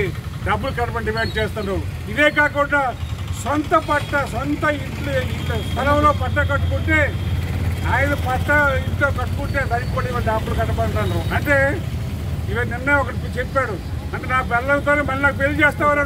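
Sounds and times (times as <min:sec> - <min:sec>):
low engine rumble: 0:00.0 - 0:16.0
man speaking loudly: 0:00.0 - 0:16.0.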